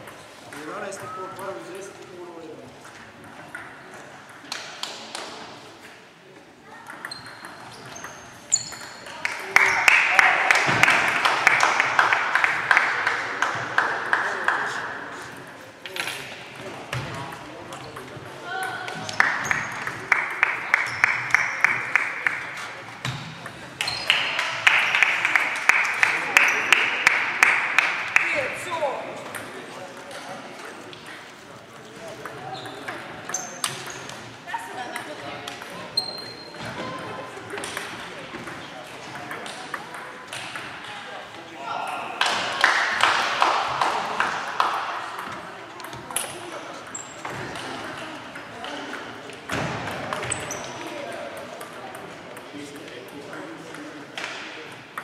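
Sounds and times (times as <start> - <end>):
table tennis balls clicking: 6.8 - 9.8, 37.5 - 40.8.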